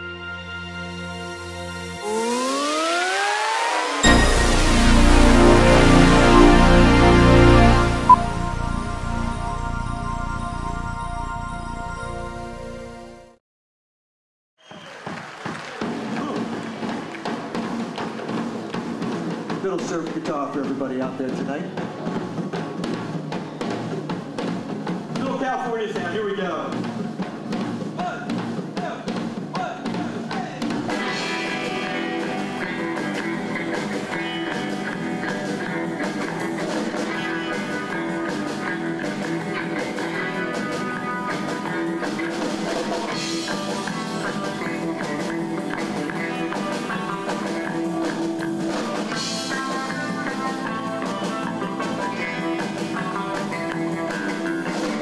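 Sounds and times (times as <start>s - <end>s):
drum kit beat: 2.0s - 8.4s, 15.8s - 55.0s
bass guitar: 4.0s - 12.6s, 30.0s - 55.0s
electric guitars: 30.9s - 55.0s.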